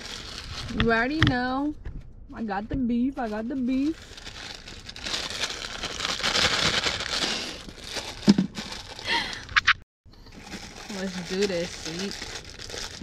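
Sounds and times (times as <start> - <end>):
plastic wrapper crinkling: 0.0 - 0.9, 3.2 - 9.5, 10.3 - 13.0.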